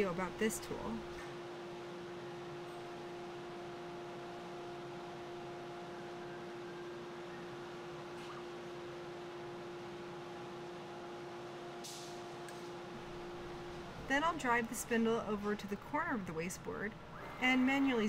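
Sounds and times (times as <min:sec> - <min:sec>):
machine hum with steady tone: 0:00.0 - 0:18.0.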